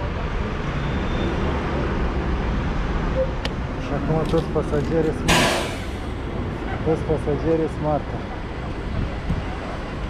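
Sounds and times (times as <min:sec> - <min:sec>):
bus engine idling: 0:03.4 - 0:06.9.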